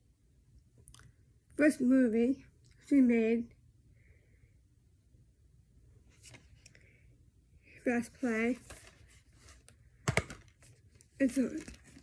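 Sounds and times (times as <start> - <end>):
plastic case clicks and taps: 10.1 - 10.4.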